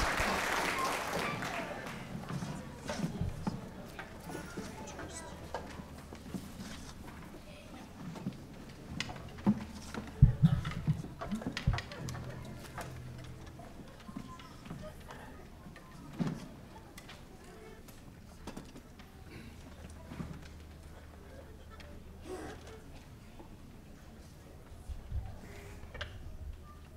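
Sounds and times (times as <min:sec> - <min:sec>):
knocks clicks and rustles: 0:02.2 - 0:17.3.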